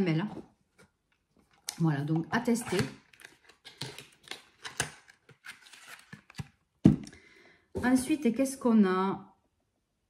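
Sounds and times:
rustles and clicks of packaging: 2.6 - 7.2.

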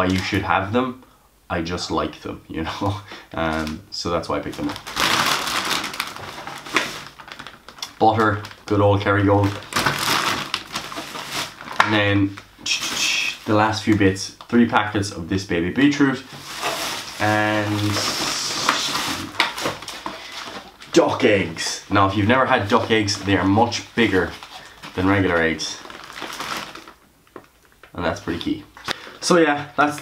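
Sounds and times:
plastic bag rustling: 3.1 - 14.2, 15.8 - 30.0.

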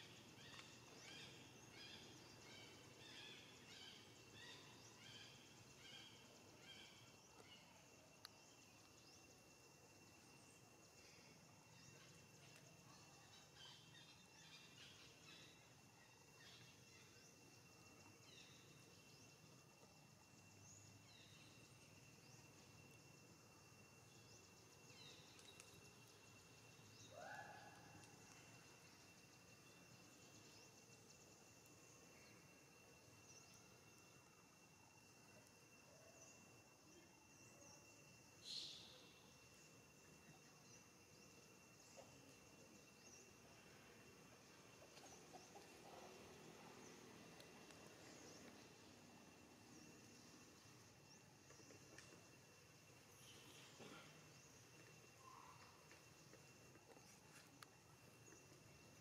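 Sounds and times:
small chirps: 24.0 - 30.5.

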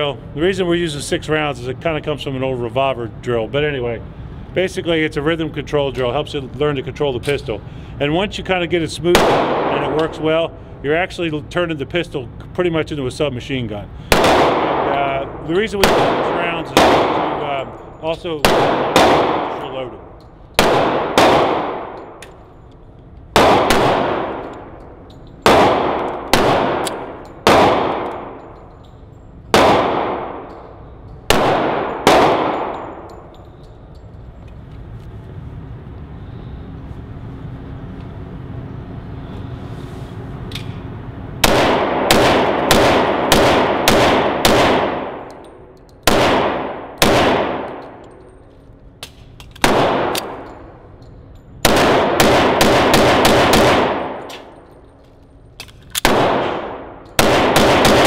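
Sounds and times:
pistol shots echoing indoors: 9.1 - 10.1, 14.1 - 17.6, 18.4 - 19.9, 20.5 - 22.3, 23.3 - 28.6, 29.5 - 33.3, 41.4 - 48.3, 49.6 - 50.7, 51.6 - 54.8, 56.0 - 58.0.

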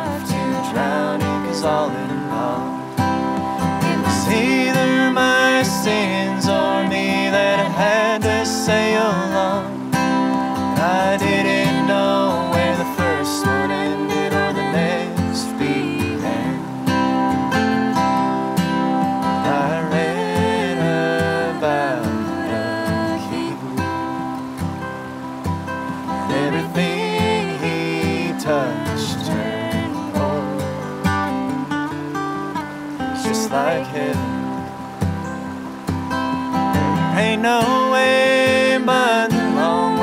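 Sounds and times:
man and woman singing: 0.0 - 3.0, 3.6 - 17.1, 19.3 - 24.3, 26.2 - 31.6, 33.0 - 34.6, 36.8 - 40.0
acoustic guitar folk song: 0.0 - 40.0.

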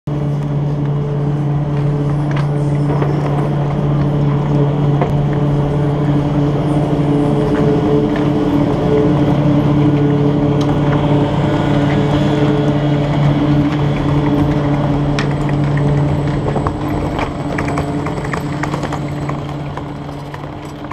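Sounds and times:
machinery humming: 0.1 - 20.9.

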